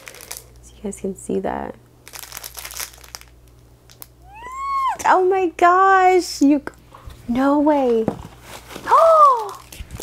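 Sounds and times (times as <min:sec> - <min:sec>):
cellophane crinkling: 0:00.0 - 0:00.8, 0:02.0 - 0:05.0, 0:08.2 - 0:10.0.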